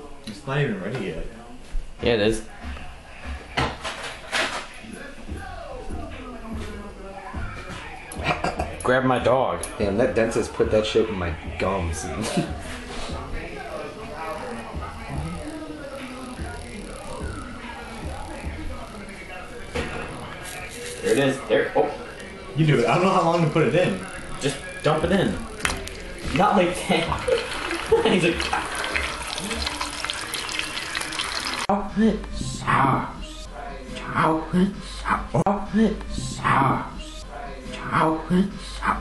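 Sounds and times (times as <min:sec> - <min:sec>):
indistinct background voices: 0:00.0 - 0:39.0.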